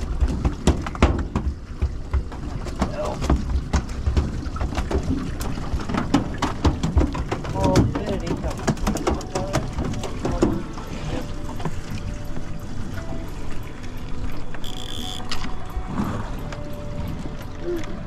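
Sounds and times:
water slapping boat hull: 0:00.0 - 0:18.0
gear knocking on deck: 0:00.2 - 0:10.5.

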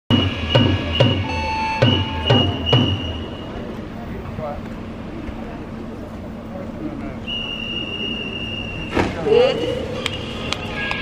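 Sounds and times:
drum-like knocking beat: 0:00.1 - 0:03.2
steady high-pitched tone: 0:00.1 - 0:03.8.

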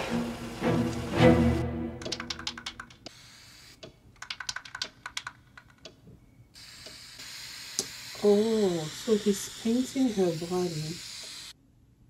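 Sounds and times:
sharp keyboard-like clicks: 0:02.0 - 0:03.1, 0:03.8 - 0:06.0
airbrush spraying hiss: 0:03.1 - 0:03.9, 0:06.6 - 0:11.6
person speaking: 0:08.2 - 0:11.0.

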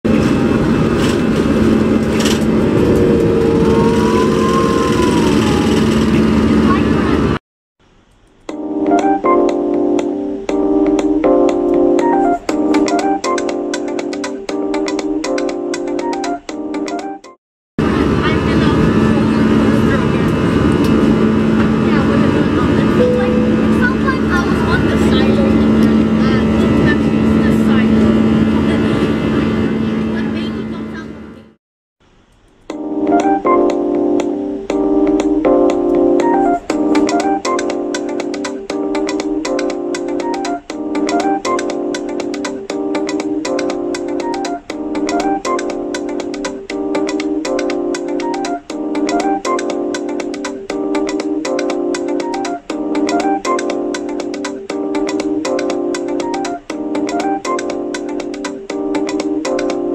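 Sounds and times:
jet engines rushing in cabin: 0:00.1 - 0:07.4, 0:17.8 - 0:31.6
steady hum: 0:17.8 - 0:31.4
faint rising and falling tone: 0:22.9 - 0:29.8.

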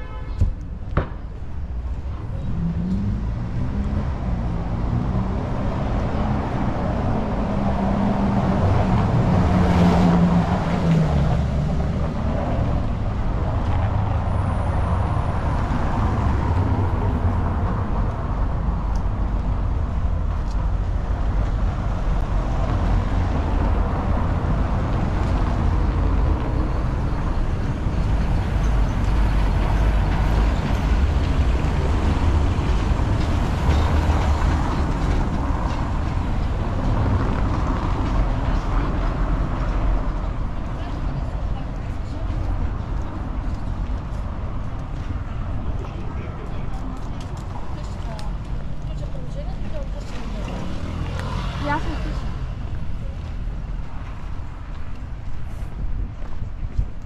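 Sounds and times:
street traffic rumble: 0:00.0 - 0:57.0.

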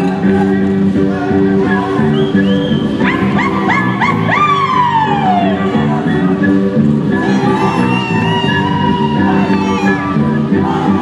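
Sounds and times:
folk dance music: 0:00.0 - 0:11.0
high yelps and wail: 0:03.0 - 0:05.6.

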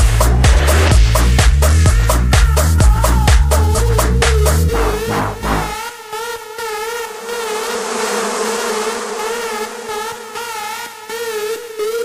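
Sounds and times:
buzzing synth note: 0:04.7 - 0:11.6
wash of noise: 0:07.1 - 0:11.0.

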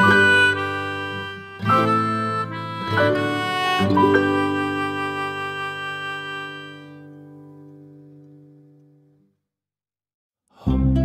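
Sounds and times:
sustained instrumental chord: 0:00.0 - 0:09.0.

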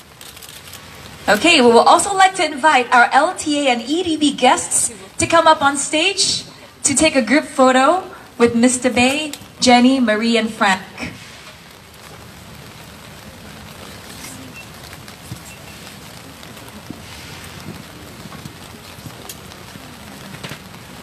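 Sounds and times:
outdoor background hiss: 0:00.0 - 0:21.0.

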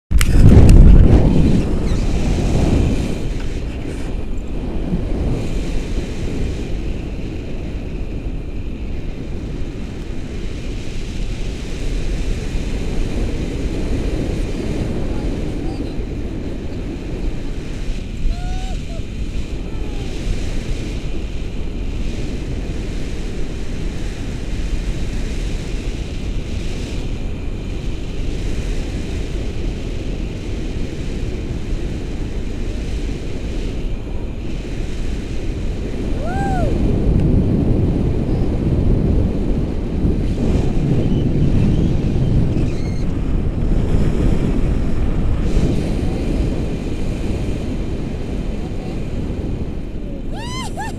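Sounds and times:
wind rushing over microphone: 0:00.1 - 0:50.9.

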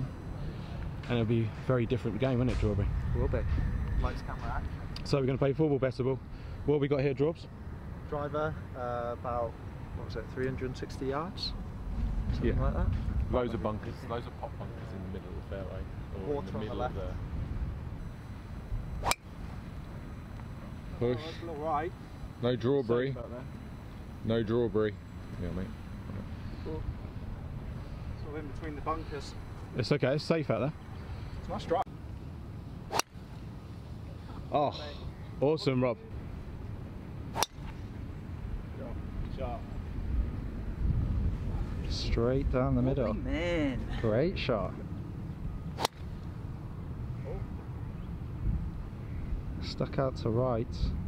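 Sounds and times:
golf club striking ball: 0:18.9 - 0:19.3, 0:32.9 - 0:33.1, 0:37.4 - 0:37.8, 0:45.8 - 0:46.2.

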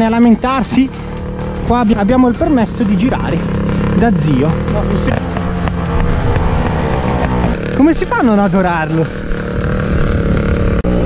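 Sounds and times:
two-stroke motorbike engine running: 0:00.0 - 0:11.0.

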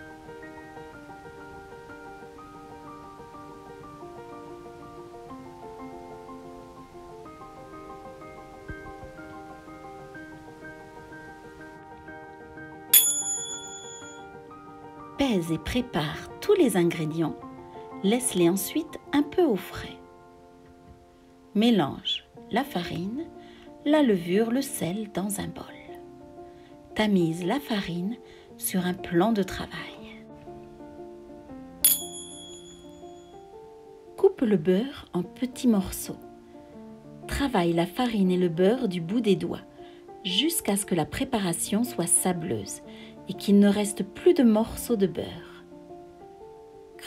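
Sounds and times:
soft background music: 0:00.0 - 0:47.0
bright bell ding: 0:12.9 - 0:14.3, 0:31.8 - 0:33.3.

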